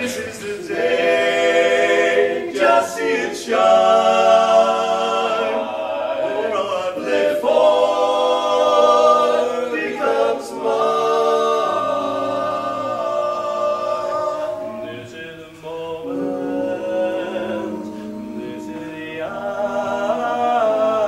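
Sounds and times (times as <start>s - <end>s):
male quartet singing a cappella: 0.0s - 21.0s.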